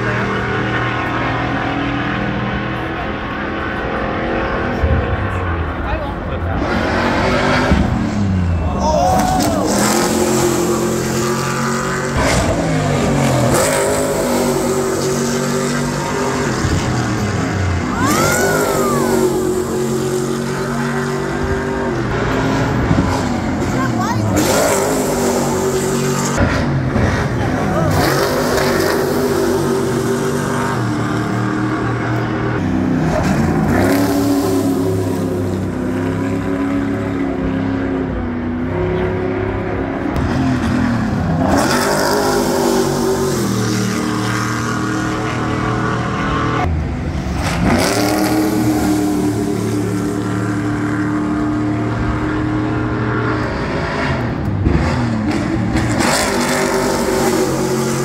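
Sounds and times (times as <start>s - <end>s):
racing truck engines passing: 0.0s - 58.0s.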